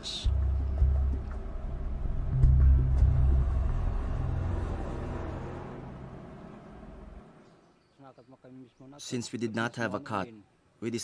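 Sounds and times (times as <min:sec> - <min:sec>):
deep low rumble: 0:00.3 - 0:05.2.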